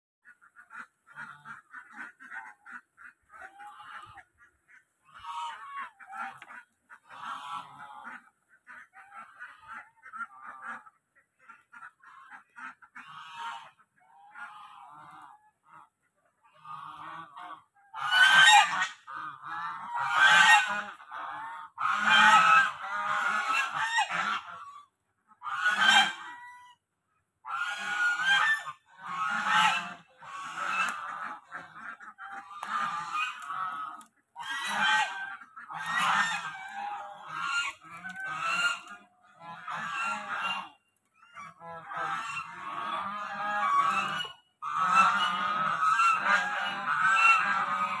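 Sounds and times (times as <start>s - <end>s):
geese honking: 0.2s - 26.8s, 27.4s - 48.0s.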